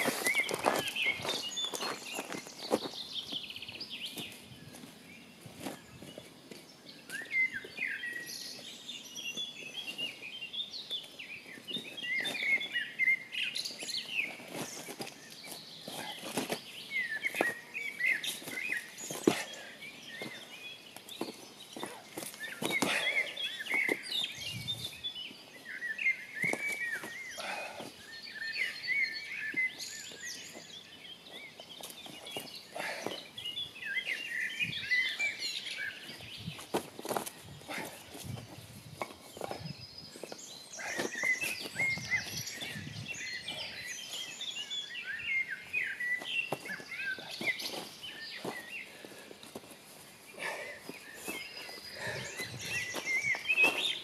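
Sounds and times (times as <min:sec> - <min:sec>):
footsteps on gravel: 0:00.0 - 0:06.7, 0:46.2 - 0:54.0
songbirds chirping: 0:00.0 - 0:54.0.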